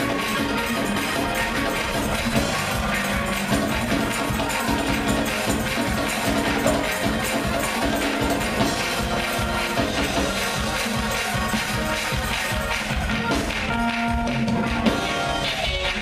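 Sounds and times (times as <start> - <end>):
fast gospel church band music: 0.0 - 16.0.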